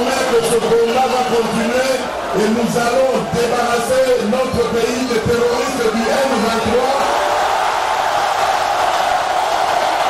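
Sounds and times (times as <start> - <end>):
large crowd cheering: 0.0 - 10.0.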